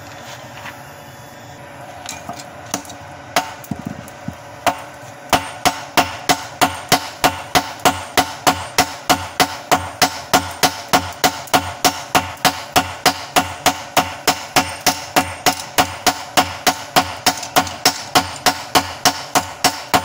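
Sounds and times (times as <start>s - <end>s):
hammers striking steel on anvil: 2.3s - 3.7s, 4.6s - 20.0s.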